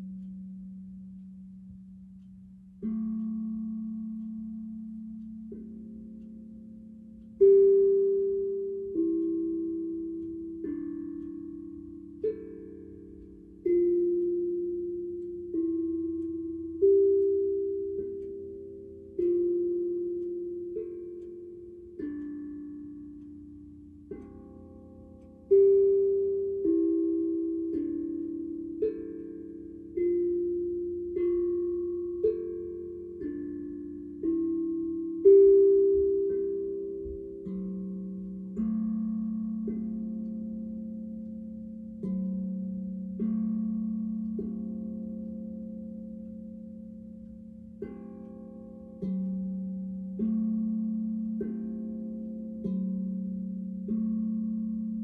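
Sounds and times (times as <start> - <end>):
steel tongue drum melody: 0.0 - 55.0.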